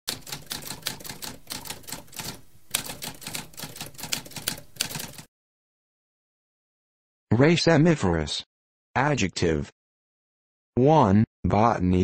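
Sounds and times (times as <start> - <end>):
typewriter keystrokes: 0.1 - 5.3.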